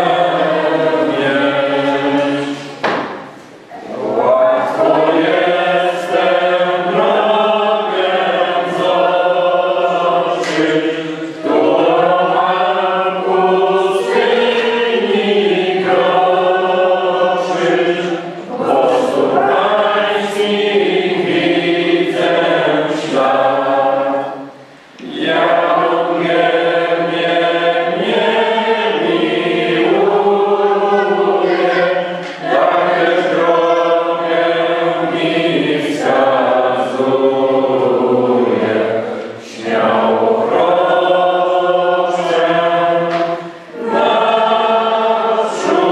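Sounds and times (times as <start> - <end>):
choir singing: 0.0 - 45.9.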